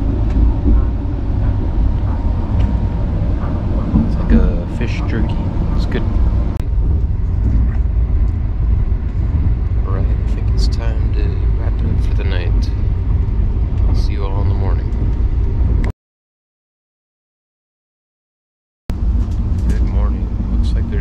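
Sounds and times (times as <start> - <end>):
indistinct voices: 0.0 - 8.0, 9.7 - 12.9, 13.7 - 15.1
train rumbling: 0.0 - 15.9, 18.9 - 21.0.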